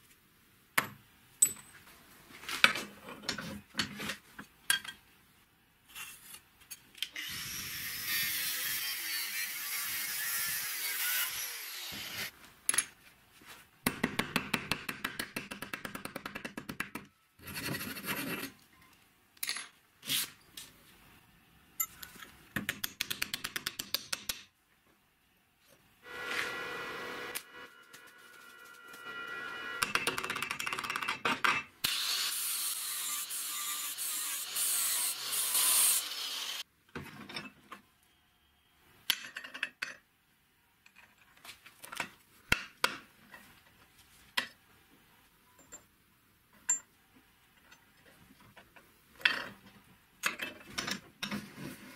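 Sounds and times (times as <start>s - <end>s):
angle grinder cutting steel pipe: 7.2s - 12.2s, 26.1s - 27.7s, 31.8s - 36.6s.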